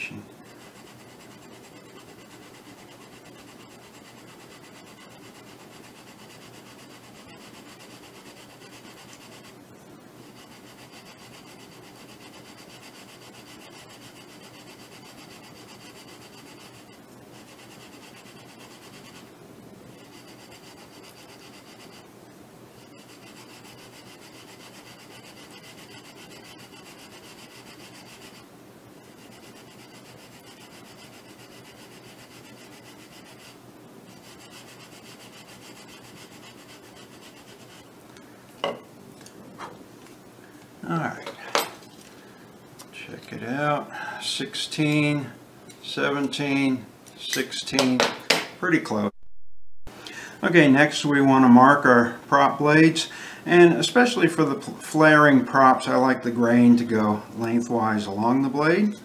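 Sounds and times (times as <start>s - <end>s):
sanding block rasping on wood: 0.7s - 9.6s, 10.2s - 16.8s, 17.4s - 19.3s, 20.0s - 22.0s, 22.9s - 28.4s, 29.1s - 37.9s.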